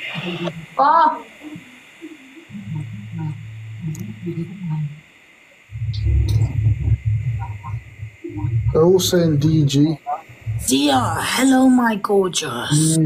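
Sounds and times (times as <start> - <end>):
deep rumbling: 2.5 - 5.0, 5.7 - 11.5
deep voice murmuring: 2.5 - 5.0, 5.7 - 11.4.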